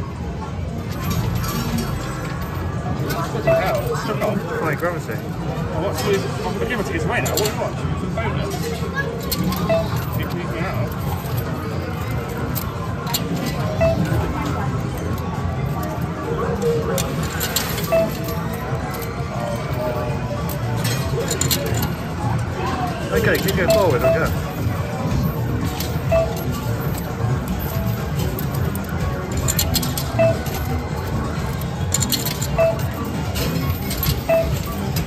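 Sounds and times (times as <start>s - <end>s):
coins clinking and sliding: 0.9s - 5.1s, 8.5s - 35.0s
arcade machine music: 8.9s - 35.0s.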